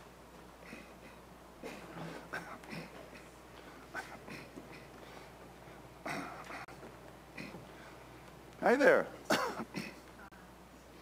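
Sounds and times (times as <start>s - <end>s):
person coughing: 0.6s - 4.9s, 6.0s - 6.7s, 9.3s - 10.0s.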